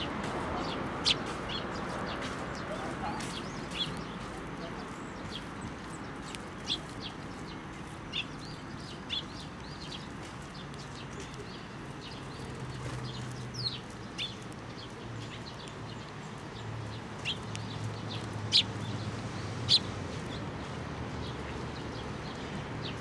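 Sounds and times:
sparrows chirping: 0.0s - 23.0s.

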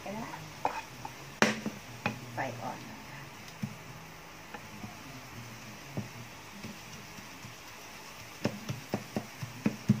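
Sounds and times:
garlic frying in oil: 0.0s - 10.0s
spatula stirring in pan: 0.0s - 10.0s.

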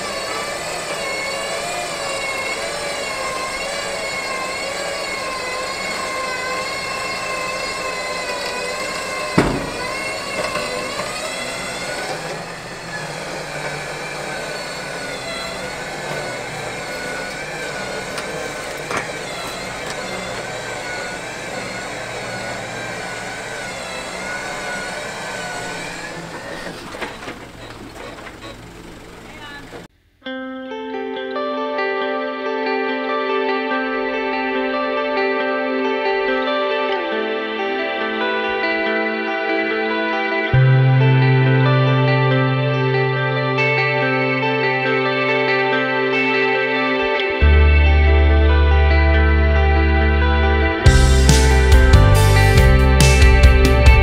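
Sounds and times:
electric winch motor whining: 0.0s - 29.9s, 33.4s - 54.0s
sharp knocks: 9.4s - 11.1s.

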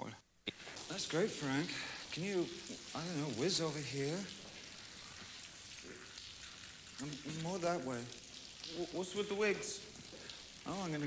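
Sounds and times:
low steady background hiss: 0.0s - 11.0s.

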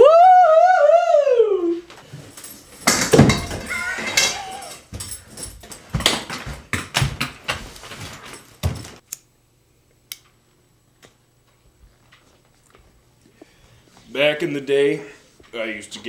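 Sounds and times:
person wailing: 0.0s - 1.9s, 3.6s - 4.8s
knocks and thumps: 2.9s - 3.7s.

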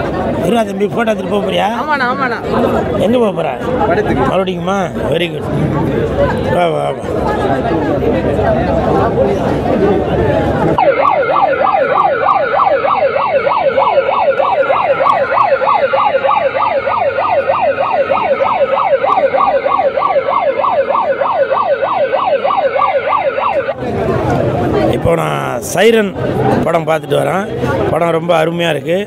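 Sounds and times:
toy siren warbling: 10.8s - 23.8s.

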